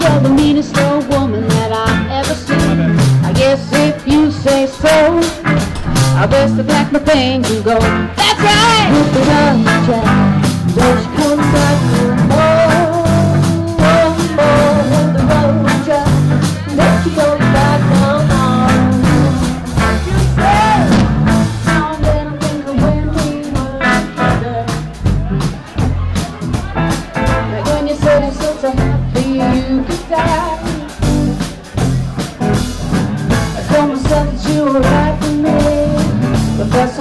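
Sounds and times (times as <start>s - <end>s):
woman singing: 0.0s - 25.1s, 27.3s - 31.5s, 33.5s - 37.0s
drum kit steady beat: 0.0s - 37.0s
electric guitar: 0.0s - 37.0s
upright bass: 0.0s - 37.0s.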